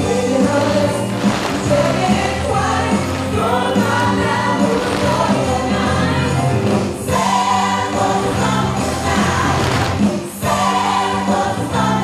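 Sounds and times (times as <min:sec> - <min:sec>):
choir singing long notes: 0:00.1 - 0:12.0.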